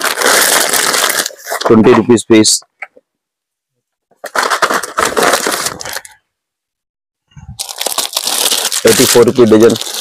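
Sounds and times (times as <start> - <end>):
plastic packet crinkling: 0.0 - 1.8, 4.1 - 6.2, 7.6 - 10.0.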